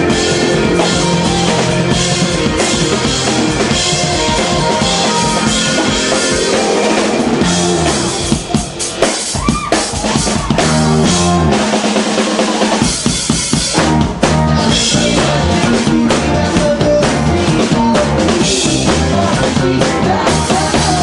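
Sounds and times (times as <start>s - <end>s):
sliding bending pitched tones: 0.0s - 9.4s
rock band playing live: 0.0s - 21.0s.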